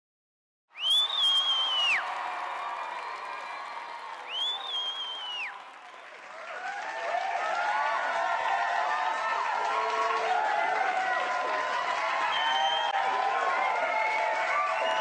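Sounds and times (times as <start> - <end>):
whooping voices: 0.8 - 6.0
long whistles: 0.8 - 6.2, 12.3 - 13.0
audience applause and cheering: 0.8 - 15.0.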